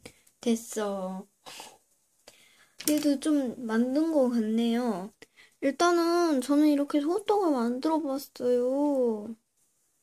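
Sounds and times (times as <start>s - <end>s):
woman speaking: 0.4s - 1.3s, 2.8s - 9.4s.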